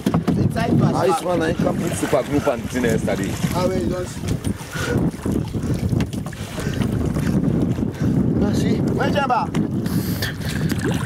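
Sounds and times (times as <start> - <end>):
wind noise on microphone: 0.0 - 11.0.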